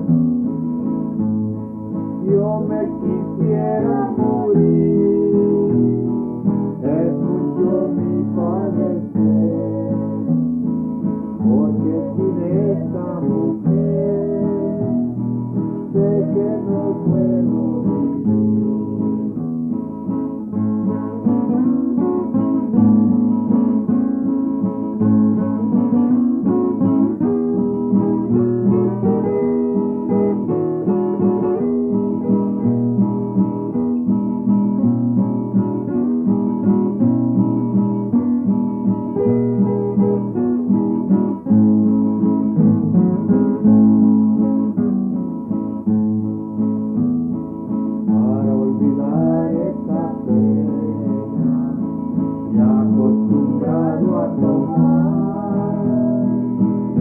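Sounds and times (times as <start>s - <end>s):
acoustic guitar folk song: 0.0s - 57.0s.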